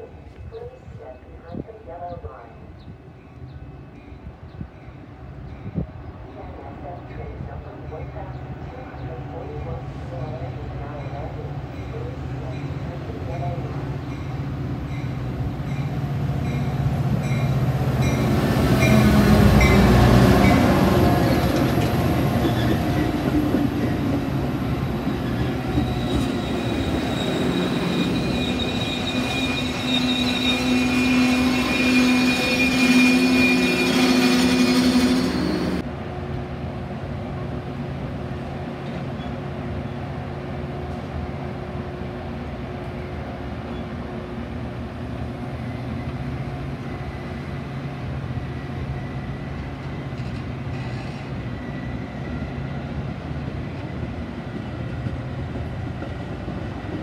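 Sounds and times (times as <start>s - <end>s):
diesel locomotive passing: 0.1s - 57.0s
train coaches rolling: 6.4s - 35.8s
high brake squeal: 25.4s - 35.8s, 50.7s - 51.8s.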